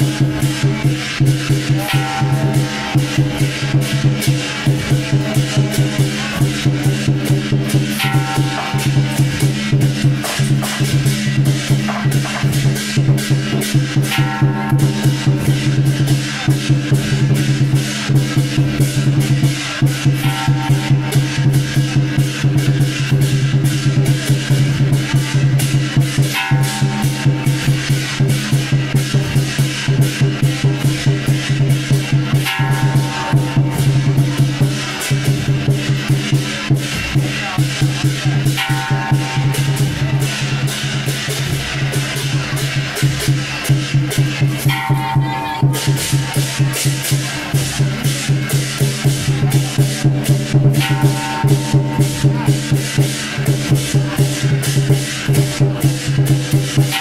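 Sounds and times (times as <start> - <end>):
fast drumbeat with percussion: 0.0 - 57.0.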